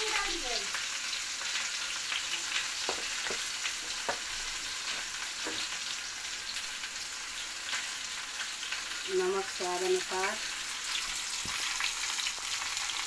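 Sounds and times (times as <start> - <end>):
banana pieces sizzling in oil: 0.0 - 13.0.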